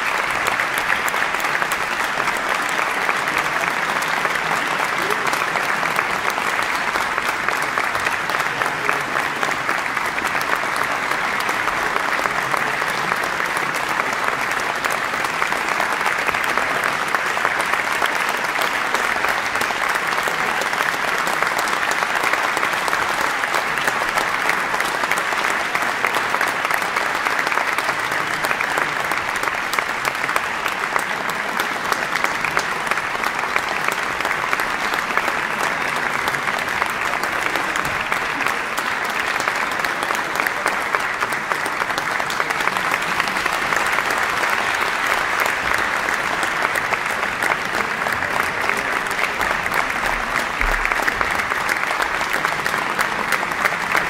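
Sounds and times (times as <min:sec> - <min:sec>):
audience applauding: 0:00.0 - 0:54.0.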